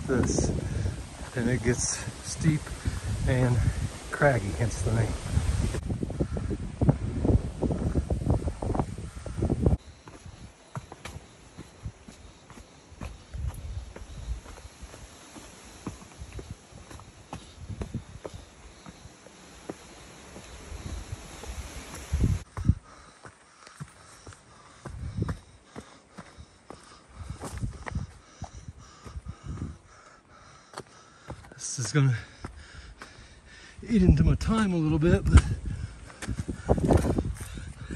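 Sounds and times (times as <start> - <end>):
wind buffeting microphone: 0.0 - 10.6, 13.0 - 19.2, 20.5 - 23.1, 24.7 - 25.6, 26.4 - 30.0, 32.6 - 37.9
footsteps on rocky trail: 0.0 - 37.9.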